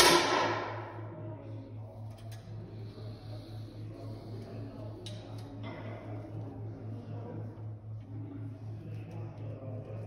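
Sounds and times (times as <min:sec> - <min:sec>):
air rifle shot: 0:00.0 - 0:00.9.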